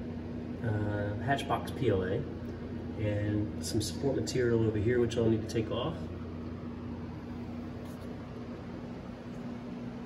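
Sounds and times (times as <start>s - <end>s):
cooling fans whirring: 0.0s - 10.0s
low even hum: 0.0s - 10.0s.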